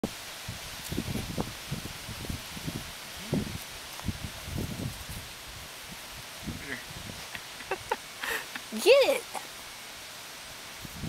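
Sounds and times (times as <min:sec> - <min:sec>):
outdoor rustling: 0:00.0 - 0:11.0
steady hiss: 0:00.0 - 0:11.0.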